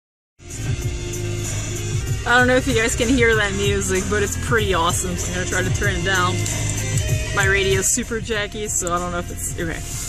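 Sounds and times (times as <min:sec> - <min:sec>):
funky music from car radio: 0:00.4 - 0:10.0.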